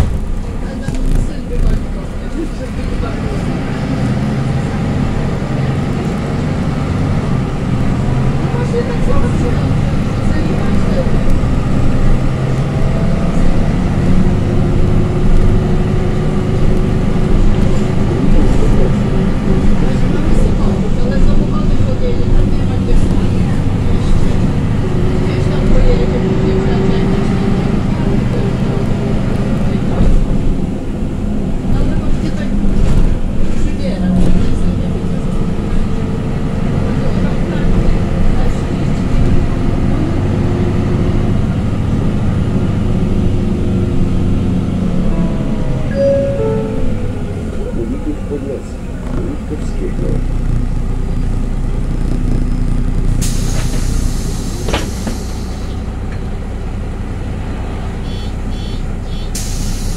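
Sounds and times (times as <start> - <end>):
diesel bus engine running: 0.0 - 59.9.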